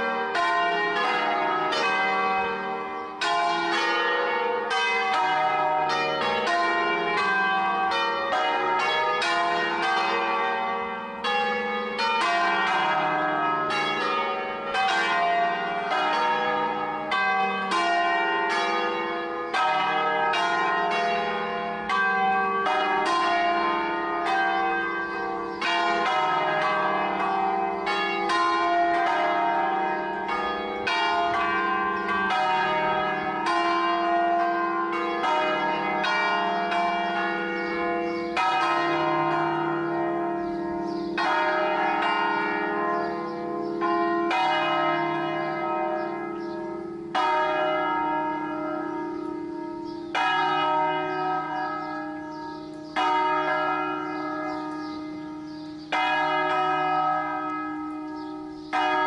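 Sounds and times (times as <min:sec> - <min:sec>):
church bells ringing: 0:00.0 - 0:59.0.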